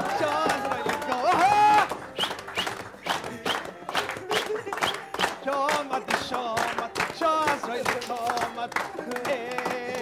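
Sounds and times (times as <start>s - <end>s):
people clapping in time: 0.0s - 10.0s.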